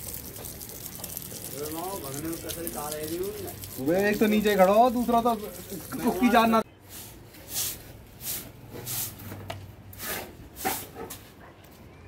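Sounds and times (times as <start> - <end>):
broom swishing on wet concrete: 2.6 - 11.4.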